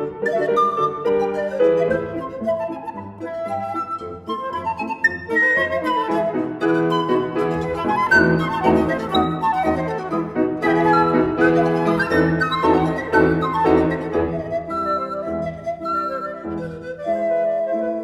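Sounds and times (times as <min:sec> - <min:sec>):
flute: 0:00.0 - 0:18.0
pan flute: 0:00.0 - 0:18.0
piano accompaniment: 0:00.0 - 0:18.0.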